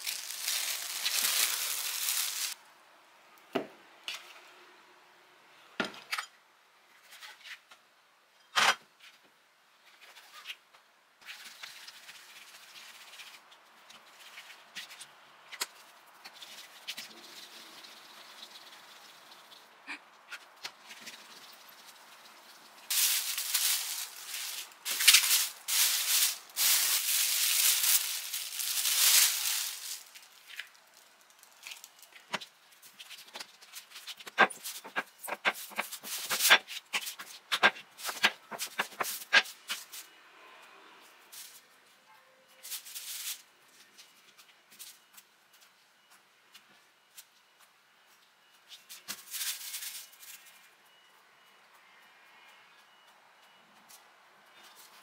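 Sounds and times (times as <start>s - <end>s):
plastic sheet crinkling: 0.0s - 2.6s, 22.9s - 39.5s.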